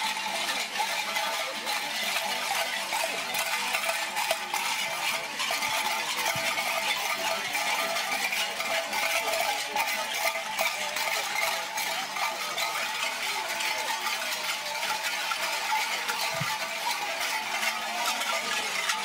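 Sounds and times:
metallic jingling and clinking: 0:00.0 - 0:19.0.

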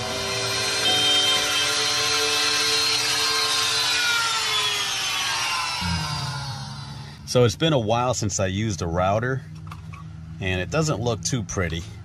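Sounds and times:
electric router cutting wood: 0:00.0 - 0:07.2.

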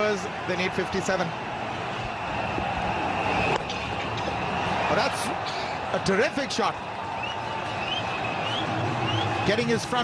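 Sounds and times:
stadium crowd cheering: 0:00.0 - 0:10.0
short rising whistles: 0:07.2 - 0:09.4.

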